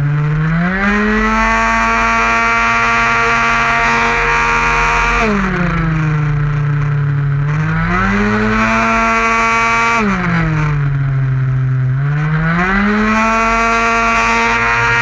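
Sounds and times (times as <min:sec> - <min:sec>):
scooter engine at high revs: 0:00.0 - 0:15.0.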